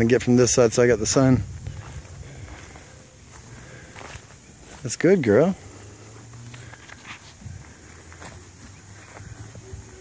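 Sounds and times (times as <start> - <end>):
footsteps on grass: 0.6 - 10.0.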